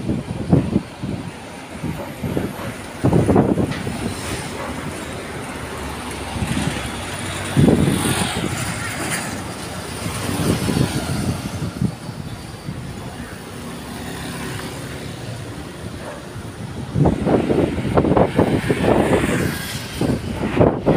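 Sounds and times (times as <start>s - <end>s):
road traffic passing: 0.0s - 20.9s.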